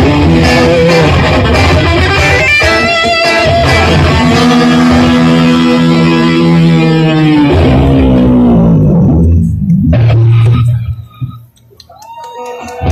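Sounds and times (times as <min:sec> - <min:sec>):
guitar chords ringing: 0:00.0 - 0:11.0.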